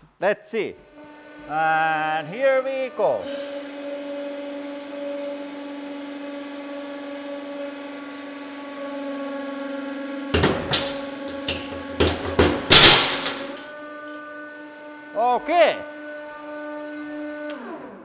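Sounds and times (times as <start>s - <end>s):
hydraulic press humming: 0.8s - 4.2s, 9.5s - 14.2s
steel bearings cracking and banging: 10.4s - 14.2s.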